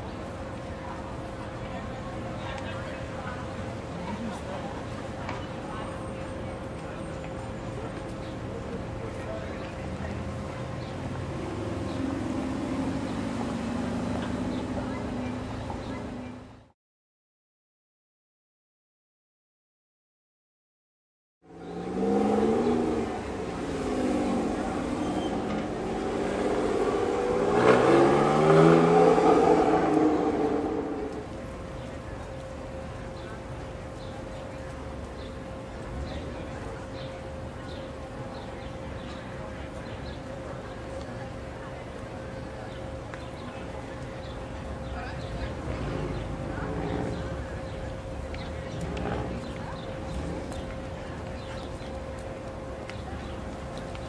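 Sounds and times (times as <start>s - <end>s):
low street rumble: 0.0s - 16.8s, 21.4s - 54.0s
sports car engine revving: 21.5s - 31.4s.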